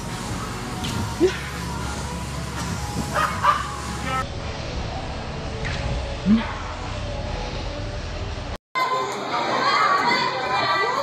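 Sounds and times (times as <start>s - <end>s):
children chattering and calling out: 8.8s - 11.0s.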